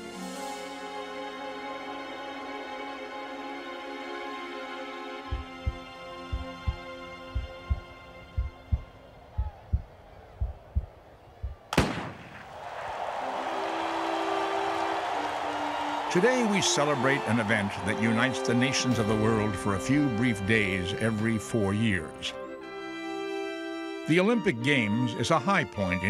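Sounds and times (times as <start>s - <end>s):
held music chords: 0.0s - 10.9s
heartbeat sound effect: 5.3s - 11.6s
starting pistol crack: 11.7s - 12.7s.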